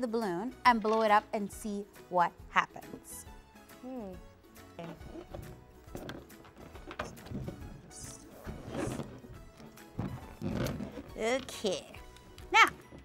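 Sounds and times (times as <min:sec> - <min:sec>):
background music: 0:00.0 - 0:13.0
rubber balloon rubbing: 0:04.8 - 0:11.5.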